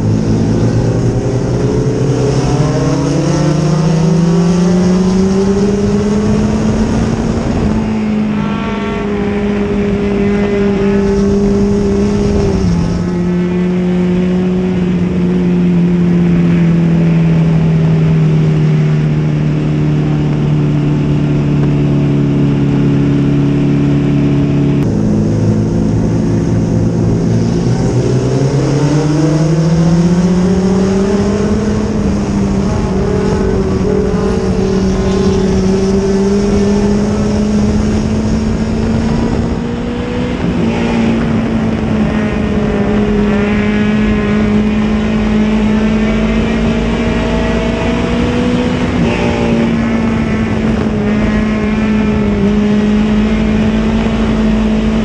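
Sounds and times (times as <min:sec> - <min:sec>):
race car engine accelerating: 0:00.0 - 0:55.0.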